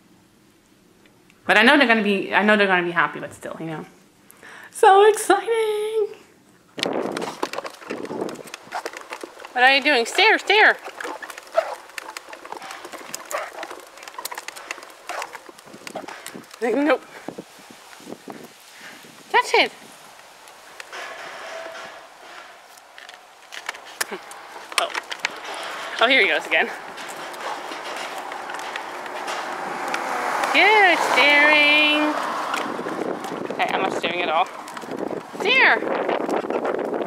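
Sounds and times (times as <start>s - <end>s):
plastic wheels rolling on concrete: 6.8s - 37.0s.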